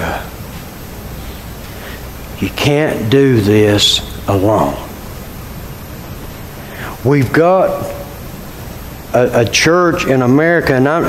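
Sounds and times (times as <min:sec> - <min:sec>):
steady room tone hiss: 0:00.0 - 0:11.0.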